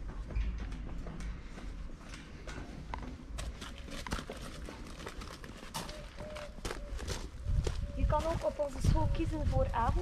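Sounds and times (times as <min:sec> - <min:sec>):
footsteps on metal stairs: 0:00.0 - 0:10.0.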